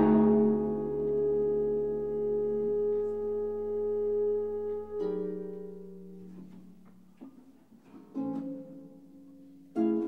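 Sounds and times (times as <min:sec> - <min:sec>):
bass trombone long notes: 0:00.0 - 0:05.3
bass clarinet long notes: 0:00.0 - 0:06.7.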